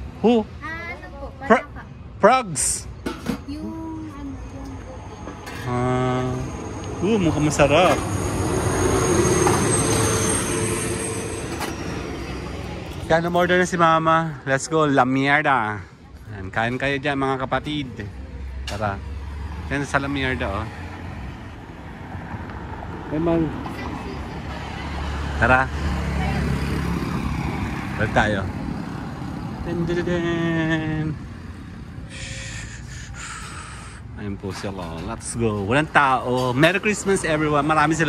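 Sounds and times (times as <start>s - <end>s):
highway traffic rumble: 0.0s - 38.0s
vehicle passing by: 4.7s - 14.7s, 17.9s - 38.0s.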